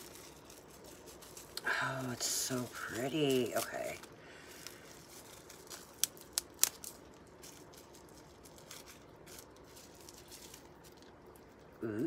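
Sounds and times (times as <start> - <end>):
packaging rustling: 0.0 - 11.8.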